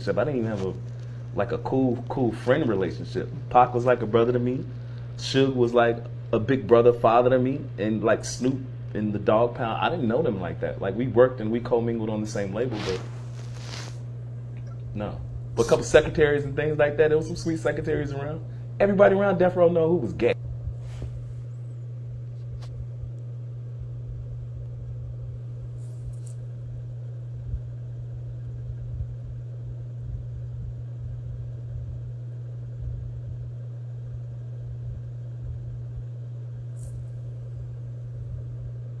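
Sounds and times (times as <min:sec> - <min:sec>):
steady low hum with rumble: 0:00.0 - 0:39.0.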